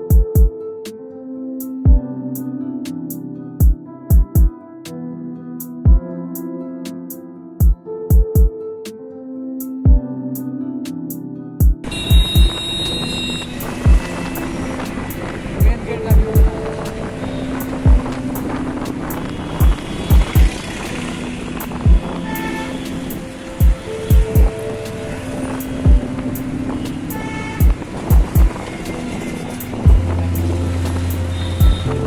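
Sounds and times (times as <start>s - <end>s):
music with drum beat: 0.0s - 0.5s, 3.6s - 4.5s, 7.6s - 8.5s, 11.6s - 12.6s, 13.9s - 14.1s, 15.6s - 16.6s, 17.6s - 18.1s, 19.6s - 20.5s, 21.9s - 22.1s, 23.6s - 24.6s, 27.6s - 28.6s, 29.9s - 30.2s, 31.1s - 31.9s
road traffic noise: 11.8s - 32.0s.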